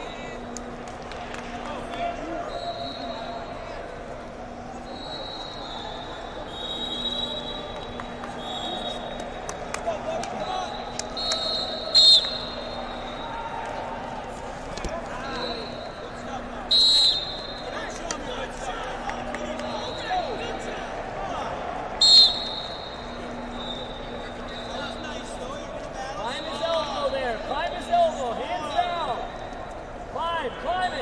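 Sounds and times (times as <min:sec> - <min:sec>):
voices in a hall: 0:00.0 - 0:31.0
faint distant whistle: 0:02.4 - 0:03.6, 0:04.8 - 0:09.4, 0:10.4 - 0:13.4, 0:15.1 - 0:17.8, 0:22.0 - 0:25.3.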